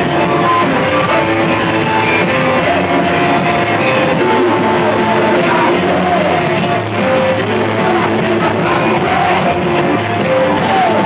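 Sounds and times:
electric guitar: 0:00.0 - 0:11.0
punk band playing: 0:00.0 - 0:11.0.

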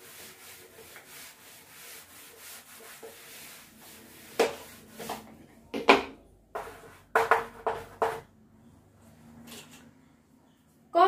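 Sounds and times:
duster rubbing chalkboard: 0:00.0 - 0:05.4, 0:06.6 - 0:08.3.

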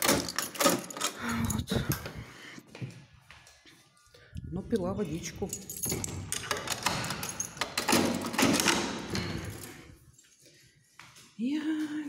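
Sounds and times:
keys jingling: 0:00.0 - 0:02.2, 0:04.7 - 0:10.4.

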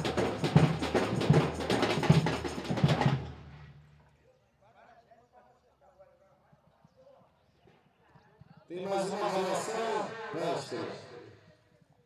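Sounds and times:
faint distant voices: 0:03.9 - 0:12.0.

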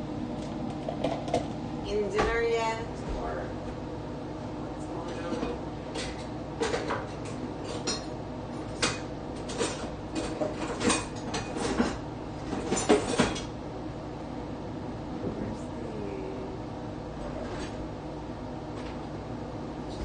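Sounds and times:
kitchenware clinking and clattering: 0:08.8 - 0:13.5.

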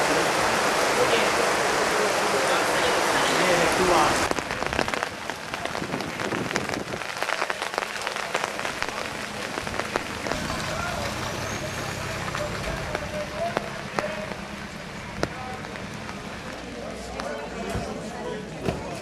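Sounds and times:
rain drops clicking on hard surfaces: 0:00.0 - 0:17.8
faint voices: 0:00.0 - 0:19.0.

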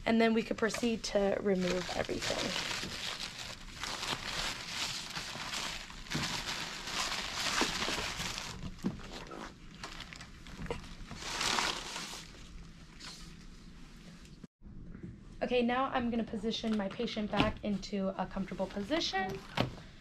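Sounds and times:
paper and plastic drapes rustling: 0:00.6 - 0:14.2.

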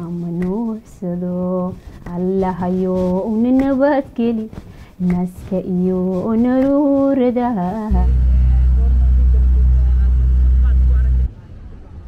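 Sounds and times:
motor rumbling: 0:07.6 - 0:11.3.

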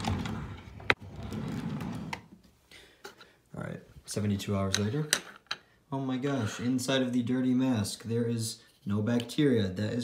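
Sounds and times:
drawer sliding on runners: 0:00.0 - 0:02.4.

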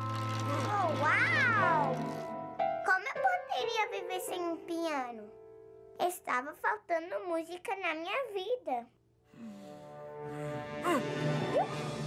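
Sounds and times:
background music: 0:00.0 - 0:06.2, 0:09.4 - 0:12.0.

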